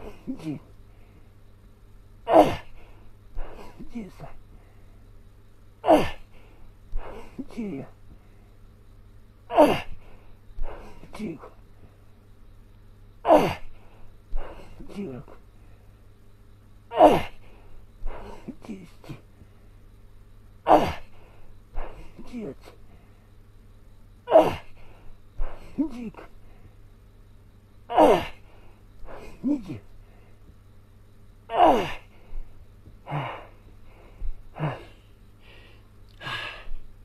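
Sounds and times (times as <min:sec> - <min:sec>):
man grunting: 0:00.0 - 0:00.7, 0:03.4 - 0:04.4, 0:07.0 - 0:08.0, 0:10.6 - 0:11.5, 0:14.4 - 0:15.4, 0:16.9 - 0:17.4, 0:18.1 - 0:19.2, 0:21.8 - 0:22.7, 0:24.3 - 0:24.8, 0:25.4 - 0:26.3, 0:27.9 - 0:28.4, 0:29.1 - 0:29.9, 0:31.5 - 0:32.1, 0:34.5 - 0:35.0
effortful breathing: 0:02.4 - 0:05.2, 0:05.9 - 0:08.6, 0:09.5 - 0:12.2, 0:13.3 - 0:16.1, 0:17.0 - 0:19.8, 0:20.8 - 0:23.5, 0:24.3 - 0:26.9, 0:27.9 - 0:30.6, 0:31.5 - 0:36.9
man's effortful exhale: 0:33.1 - 0:36.8.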